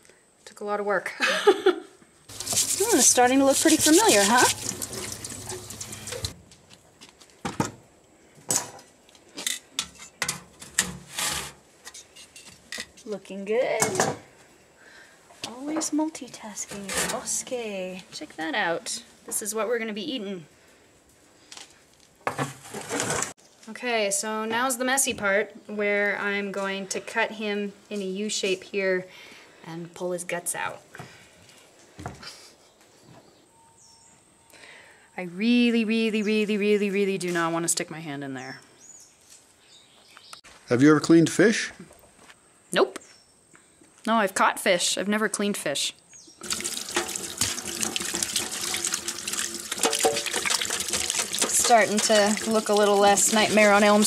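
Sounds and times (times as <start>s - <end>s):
tap water running into sink: 2.3s - 6.4s, 46.4s - 54.0s.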